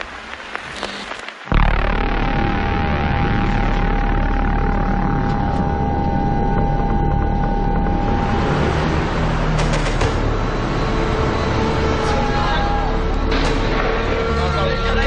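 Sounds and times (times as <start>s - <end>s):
steady high tone: 1.5s - 9.6s
dense rumbling sound effects: 1.5s - 15.0s
sharp hits: 1.5s - 15.0s.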